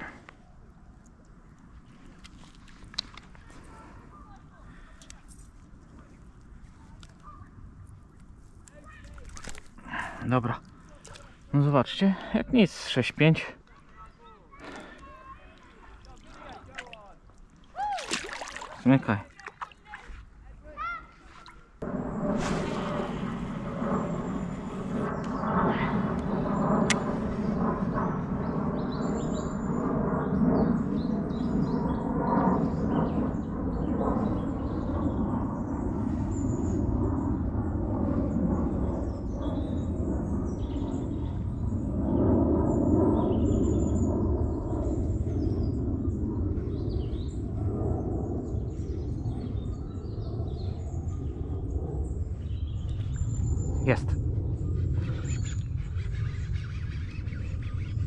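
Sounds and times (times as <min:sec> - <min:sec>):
low rumble: 0:21.8 - 0:58.0
small birds chirping: 0:38.8 - 0:41.8, 0:48.4 - 0:58.0.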